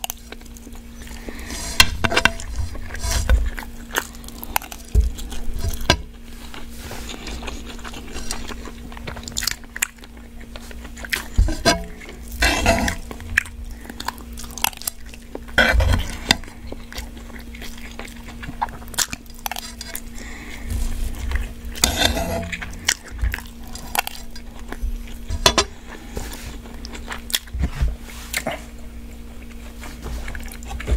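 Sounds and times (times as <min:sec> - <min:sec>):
chewing and crunching: 0:00.0 - 0:30.9
metal spoon scraping a pan: 0:11.5 - 0:13.1, 0:21.8 - 0:22.7.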